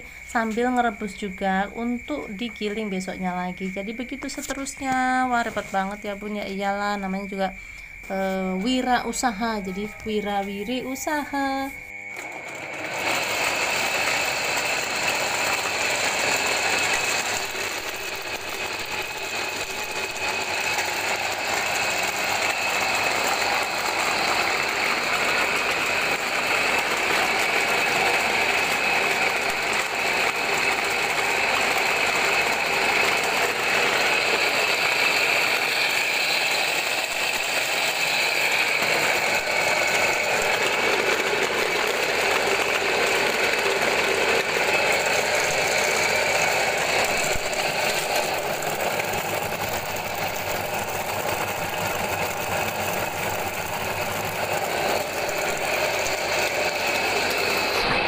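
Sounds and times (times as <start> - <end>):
motorized grinder running: 0.0 - 58.0.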